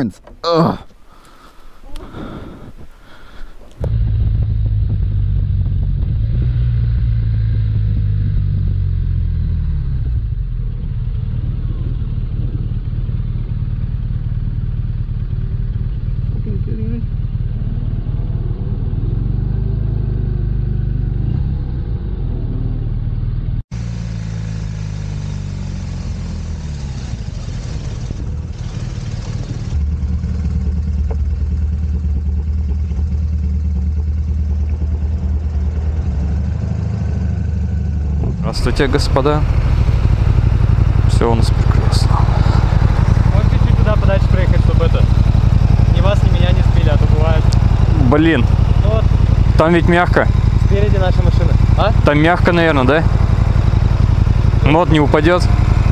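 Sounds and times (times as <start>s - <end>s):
motorcycle engine running: 1.8s - 55.9s.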